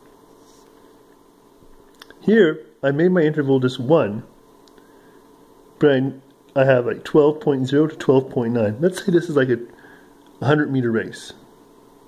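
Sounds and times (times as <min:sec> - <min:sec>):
faint hum: 0:00.0 - 0:12.0
steady low hiss: 0:00.0 - 0:12.0.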